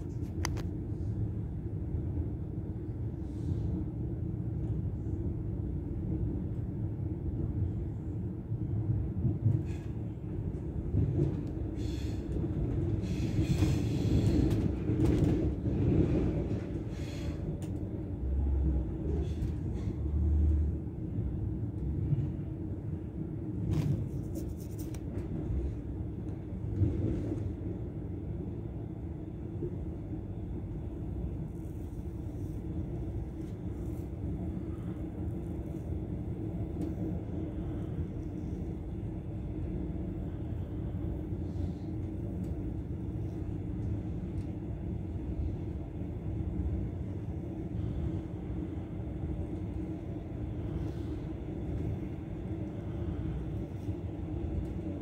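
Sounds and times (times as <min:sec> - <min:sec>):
train rumbling inside carriage: 0:00.0 - 0:55.0.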